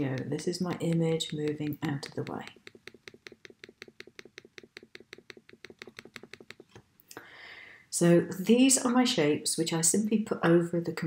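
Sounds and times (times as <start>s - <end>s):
fast faint computer clicks: 0.0s - 6.8s.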